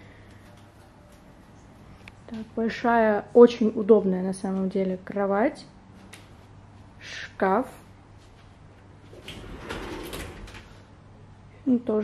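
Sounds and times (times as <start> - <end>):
wooden sliding door rolling open: 9.1 - 10.8.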